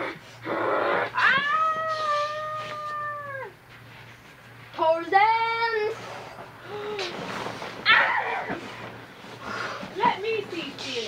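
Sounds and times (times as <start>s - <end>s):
cat meowing: 1.2s - 3.5s.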